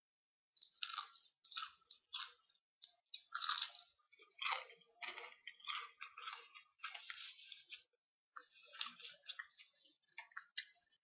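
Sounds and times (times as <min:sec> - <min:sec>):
crunching and chewing crisp food: 0:00.6 - 0:11.0.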